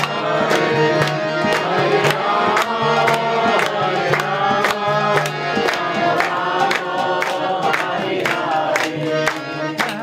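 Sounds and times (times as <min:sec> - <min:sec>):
harmonium chords: 0:00.0 - 0:10.0
percussion beat with sharp strikes: 0:00.0 - 0:10.0.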